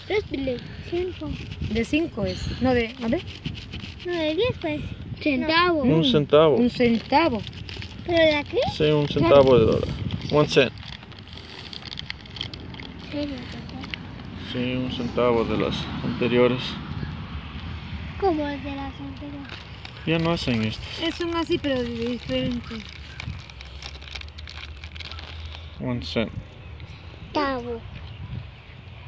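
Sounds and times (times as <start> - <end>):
outdoor background noise: 0.0 - 29.0
gloved hand rubbing microphone: 0.9 - 4.8
crackling rustle: 6.0 - 14.8, 17.6 - 25.8.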